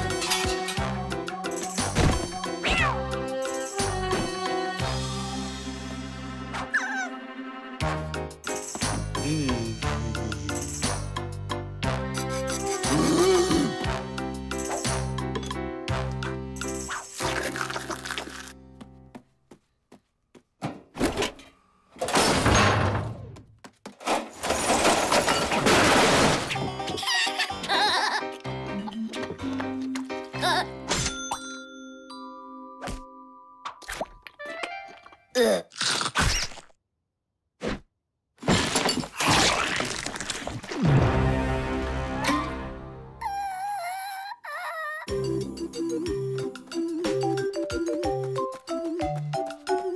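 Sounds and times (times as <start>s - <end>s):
cartoon background music: 0.0s - 19.0s, 26.1s - 31.4s, 40.8s - 49.9s
dishes clattering crash: 24.1s - 26.7s.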